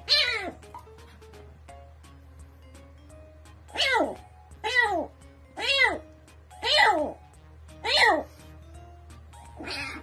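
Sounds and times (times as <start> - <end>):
kitten yowling: 0.0 - 0.6, 3.8 - 6.0
faint background music: 0.0 - 10.0.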